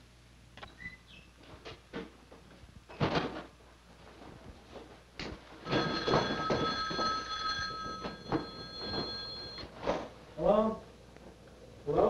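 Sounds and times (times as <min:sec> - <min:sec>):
footsteps on stairs: 0:04.6 - 0:09.6
telephone bell ringing: 0:05.6 - 0:09.7.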